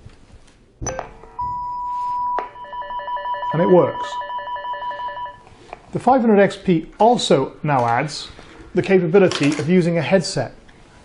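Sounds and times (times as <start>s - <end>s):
steady beep: 1.4s - 5.4s
warbling two-pitch tone: 2.6s - 5.4s.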